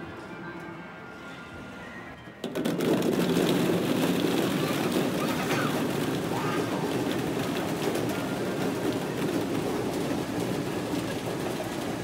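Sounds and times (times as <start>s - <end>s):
plastic balls clattering: 2.4s - 12.0s.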